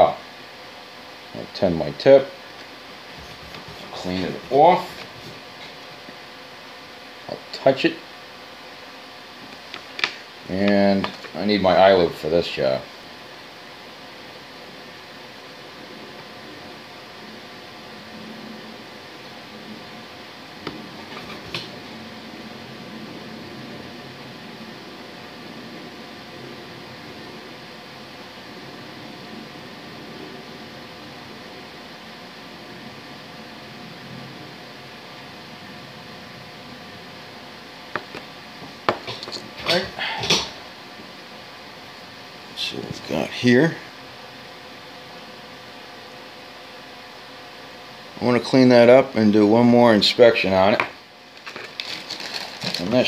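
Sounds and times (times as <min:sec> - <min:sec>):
faint fan hum: 0:00.0 - 0:53.0
steady background hiss: 0:00.0 - 0:53.0
paper filter rustling and crinkling: 0:51.3 - 0:53.0.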